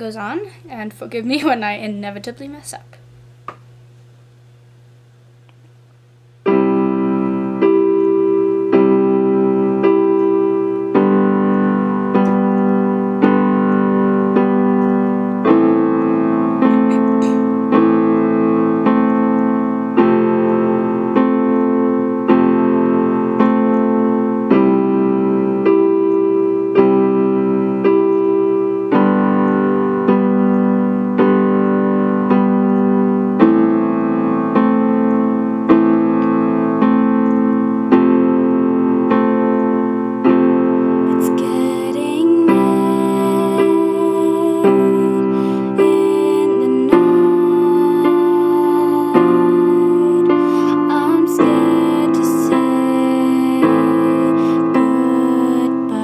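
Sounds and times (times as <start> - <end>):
piano playing repeated chords: 6.3 - 56.0.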